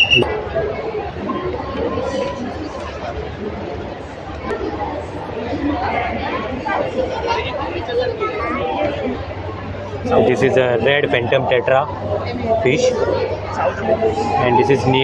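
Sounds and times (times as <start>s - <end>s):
people chattering: 0.0s - 15.0s.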